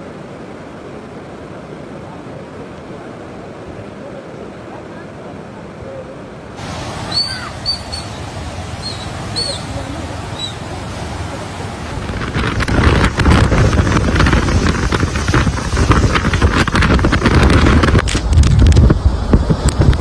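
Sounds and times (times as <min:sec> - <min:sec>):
floodwater rushing: 0:00.0 - 0:20.0
gusting wind buffeting microphone: 0:00.0 - 0:20.0.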